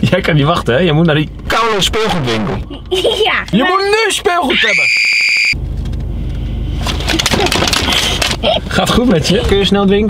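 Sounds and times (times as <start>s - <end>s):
low steady rumble: 0.0s - 4.6s, 5.5s - 10.0s
child shrieking: 4.5s - 5.4s.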